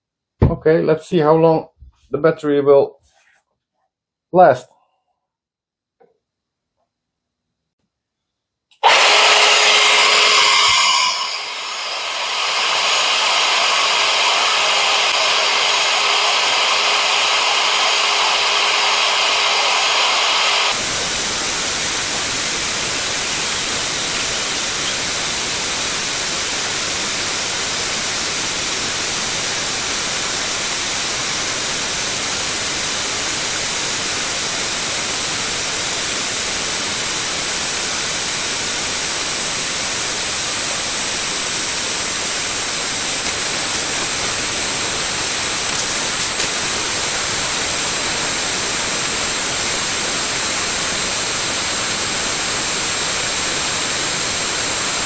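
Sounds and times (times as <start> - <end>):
air pump running: 8.8 - 55.0.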